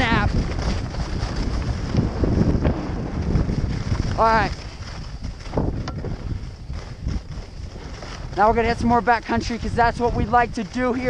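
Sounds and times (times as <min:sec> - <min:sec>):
skis sliding on snow: 0:00.0 - 0:11.0
wind buffeting microphone: 0:00.0 - 0:11.0.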